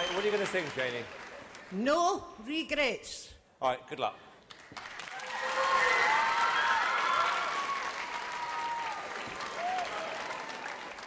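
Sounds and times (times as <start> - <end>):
audience applauding: 0.0 - 1.8, 4.5 - 11.0
people whooping: 5.1 - 10.7.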